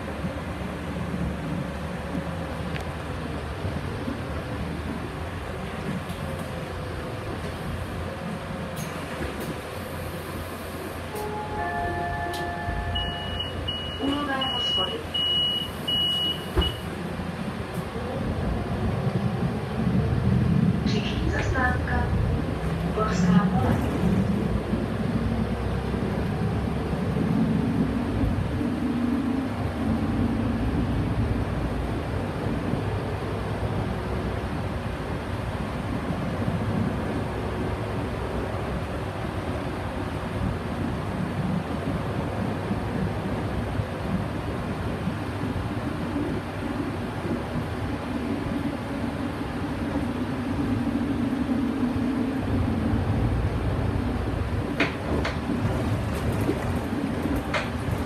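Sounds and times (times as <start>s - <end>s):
bus engine and road noise: 0.0s - 58.0s
high beeps: 12.0s - 16.8s.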